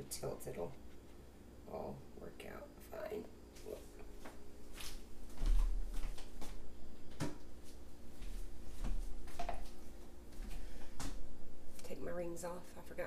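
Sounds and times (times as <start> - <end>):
faint steady hum: 0.0 - 13.0.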